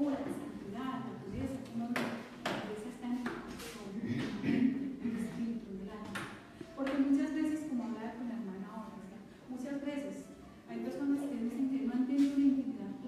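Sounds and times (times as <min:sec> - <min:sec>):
woman preaching: 0:00.0 - 0:13.0.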